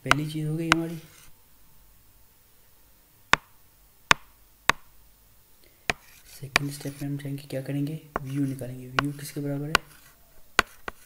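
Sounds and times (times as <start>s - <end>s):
stylus tapping tablet screen: 0.0s - 1.3s, 3.3s - 5.0s, 5.9s - 7.0s, 8.1s - 11.0s.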